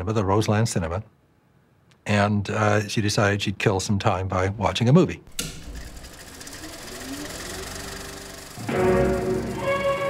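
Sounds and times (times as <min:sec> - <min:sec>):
machine humming and rattling: 0:05.3 - 0:10.0.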